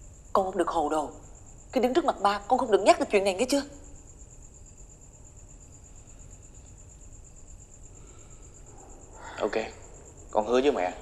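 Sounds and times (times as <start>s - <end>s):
crickets trilling: 0.0s - 11.0s
low background hum: 0.0s - 11.0s.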